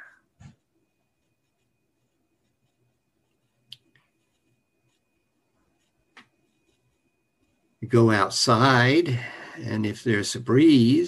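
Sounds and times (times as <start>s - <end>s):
faint steady high tone: 0.0s - 11.0s.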